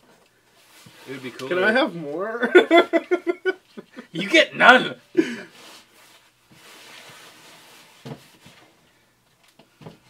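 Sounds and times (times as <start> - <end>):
person laughing: 2.4 - 4.2.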